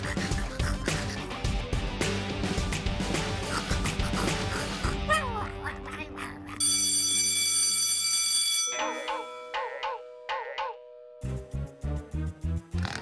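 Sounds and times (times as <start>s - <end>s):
comedic background music: 0.0s - 7.7s, 8.7s - 13.0s
bright chime-like tone: 6.6s - 11.4s.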